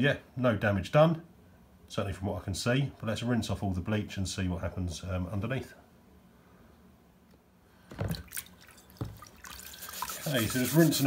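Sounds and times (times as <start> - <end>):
short water splashes: 8.0 - 11.0.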